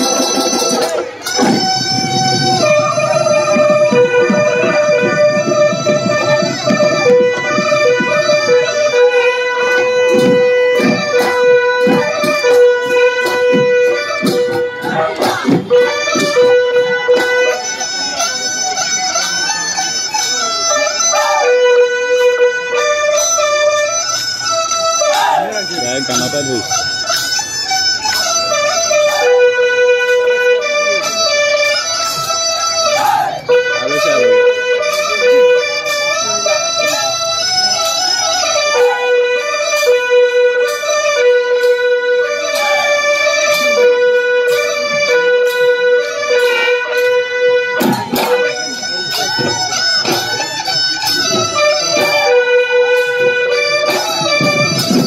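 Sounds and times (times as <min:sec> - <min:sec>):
drum strokes: 0:00.0 - 0:55.0
reedy wind instrument melody: 0:00.0 - 0:55.0.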